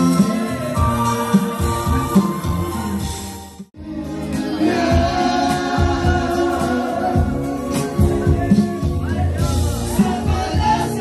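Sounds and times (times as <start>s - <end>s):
live party band music: 0.0s - 11.0s
person singing with band: 3.8s - 11.0s.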